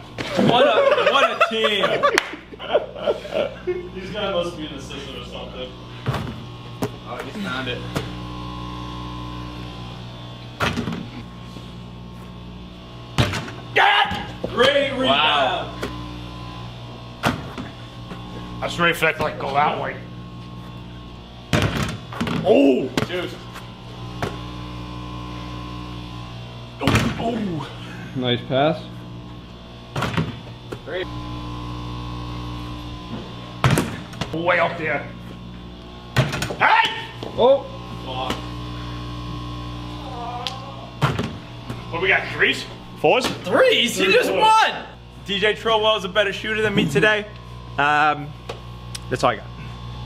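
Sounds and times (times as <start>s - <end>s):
steady low hum: 0.0s - 50.0s
people shouting and laughing: 0.2s - 4.0s, 13.8s - 14.4s, 36.6s - 37.2s, 43.5s - 45.0s
basketball knocking against hoop: 6.0s - 7.0s, 13.2s - 14.3s, 21.5s - 23.2s, 24.2s - 24.4s, 29.9s - 30.9s, 33.6s - 34.3s, 36.2s - 37.3s, 41.0s - 41.8s
basketball knocks: 21.5s - 23.2s.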